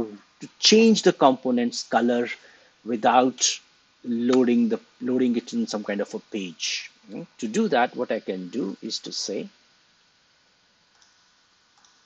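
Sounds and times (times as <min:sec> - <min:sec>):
faint computer clicks: 0:10.9 - 0:12.0.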